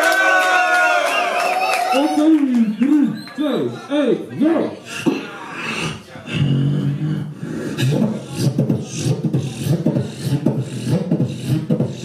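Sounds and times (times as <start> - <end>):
person beatboxing: 4.8 - 12.0.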